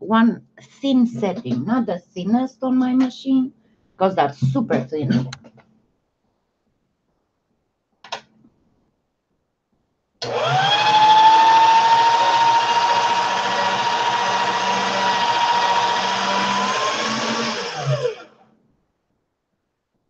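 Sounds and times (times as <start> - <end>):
pasta machine motor whine: 10.2 - 18.4.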